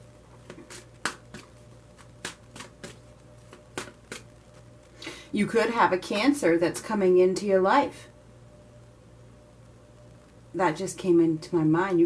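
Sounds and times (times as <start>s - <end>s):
cards being shuffled by hand: 0.4s - 4.7s.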